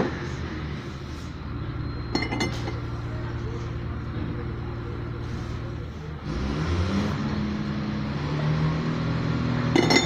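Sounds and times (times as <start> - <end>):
engine running rumble: 0.0 - 10.0.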